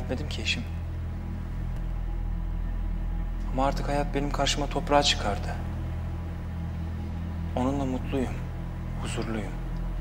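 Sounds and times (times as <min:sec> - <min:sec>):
steady low drone: 0:00.0 - 0:10.0.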